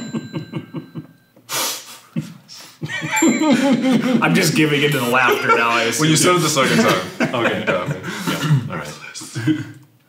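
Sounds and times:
men laughing: 0.0 - 1.1, 2.2 - 9.8.

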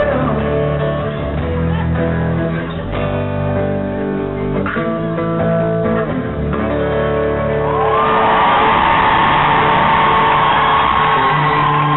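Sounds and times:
crowd cheering and screaming: 7.6 - 11.9.

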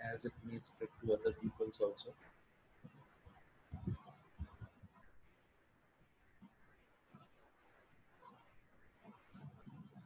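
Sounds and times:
soft low sounds: 0.0 - 10.0.

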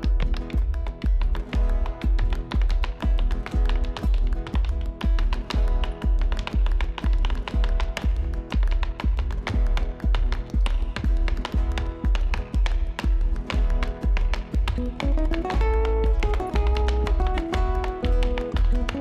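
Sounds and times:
sharp percussive taps: 0.0 - 19.0.

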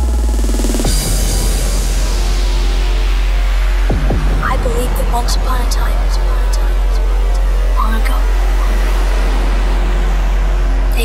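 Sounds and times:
trance dance music with heavy bass: 0.0 - 11.0.

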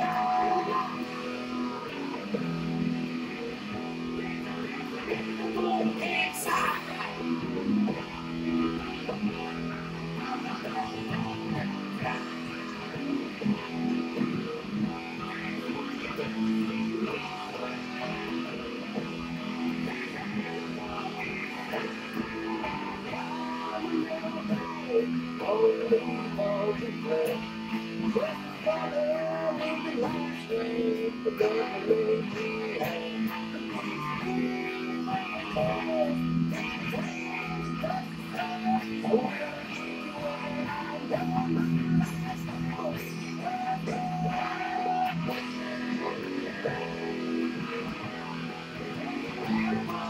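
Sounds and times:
electric guitar riff: 0.0 - 50.0.

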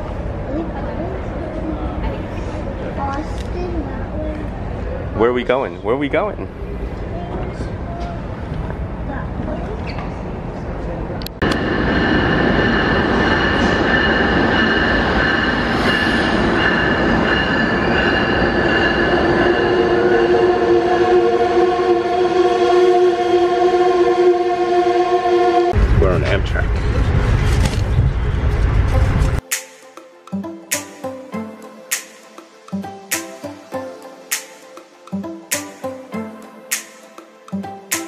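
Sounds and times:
train rumbling: 0.0 - 29.4
steady high tones: 11.4 - 25.8
lower steady tones: 11.4 - 26.7.

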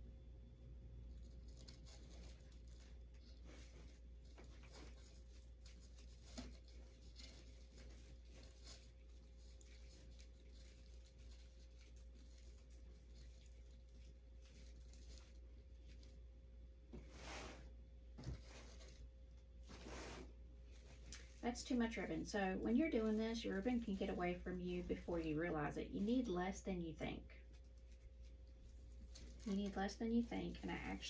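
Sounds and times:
low steady hum: 0.0 - 31.0
ribbon rustling and crinkling: 1.0 - 31.0.

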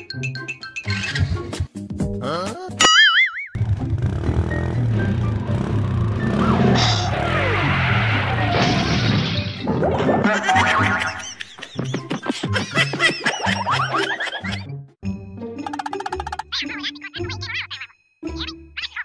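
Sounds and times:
comic music with repeating bass: 9.3 - 18.8.

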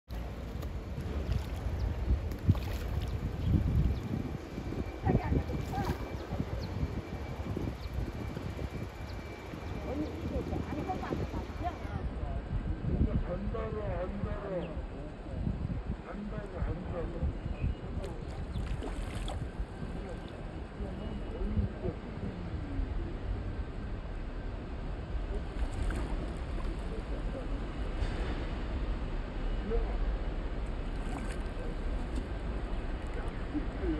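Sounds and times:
water noise: 0.1 - 8.8, 17.6 - 22.1, 25.2 - 29.0, 29.7 - 33.9
rumbling wind: 0.1 - 33.9
ducks splashing in water: 2.3 - 3.2, 18.6 - 19.5.

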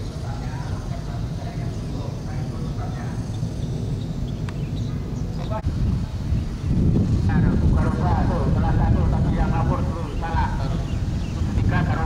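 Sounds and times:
people's voices: 0.0 - 3.6, 4.8 - 6.3, 7.1 - 12.0
wind buffeting microphone: 0.0 - 12.0.

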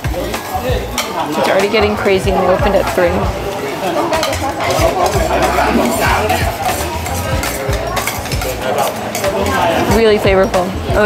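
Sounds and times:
background voices: 0.0 - 11.0
metal spoon clinking on plate: 4.1 - 10.0.

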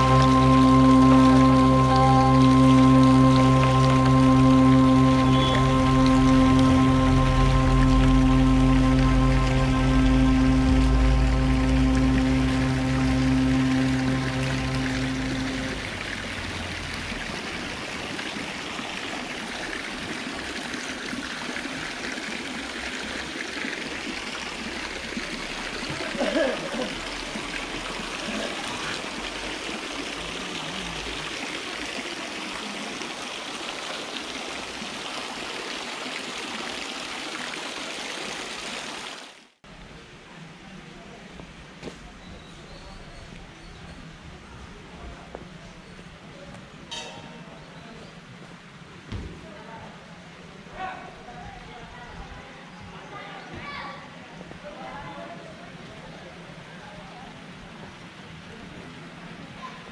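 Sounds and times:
music of long held tones: 0.0 - 18.7.

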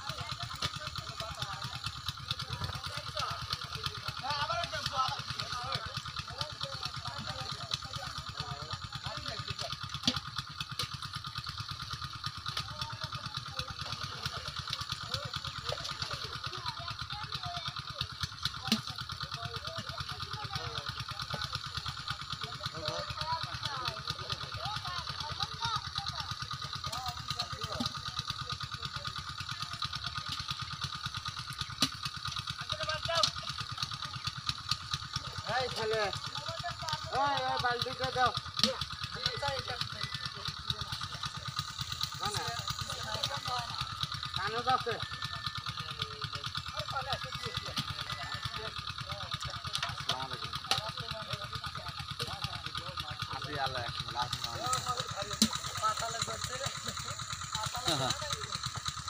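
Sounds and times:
distant voices talking: 0.0 - 59.0
small engine running: 0.0 - 59.0.

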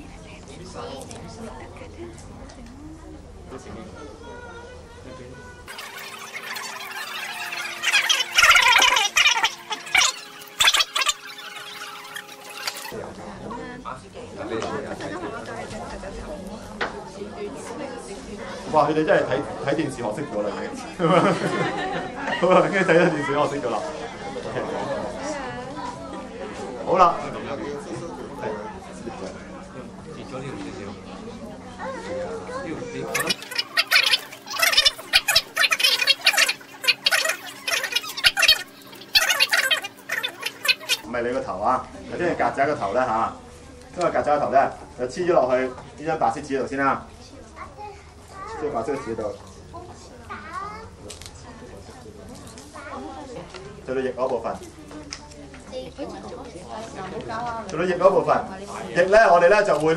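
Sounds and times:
tape screeching off roll: 5.7 - 13.0, 33.1 - 41.0.

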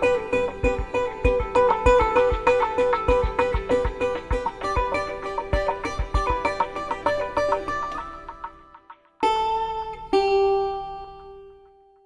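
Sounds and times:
plucked guitar note: 0.0 - 12.0
soft instrumental notes: 0.0 - 12.0.

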